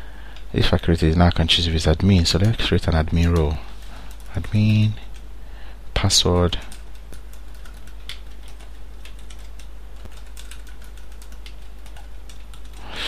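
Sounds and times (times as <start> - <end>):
low steady hum: 0.0 - 13.0
keyboard typing clicks: 6.7 - 12.8.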